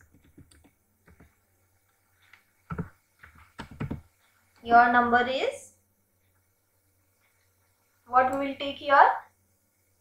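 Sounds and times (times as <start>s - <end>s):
faint keyboard keystrokes: 0.0s - 1.4s, 2.3s - 4.2s.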